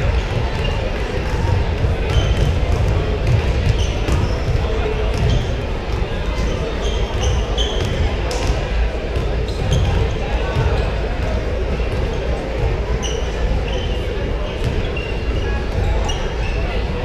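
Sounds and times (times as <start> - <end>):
basketballs bouncing on wooden floor: 0.0 - 8.6
crowd chatter: 0.0 - 17.0
sneaker squeaks: 0.0 - 17.0.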